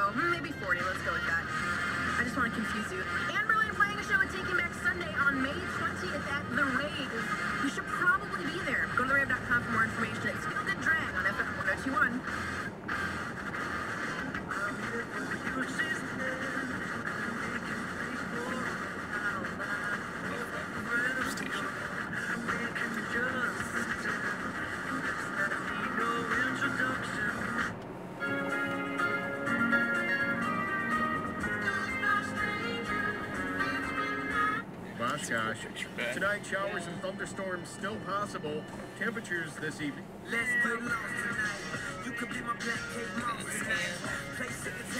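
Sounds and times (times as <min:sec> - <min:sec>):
car radio music: 0:00.0 - 0:44.9
low road noise: 0:00.0 - 0:44.9.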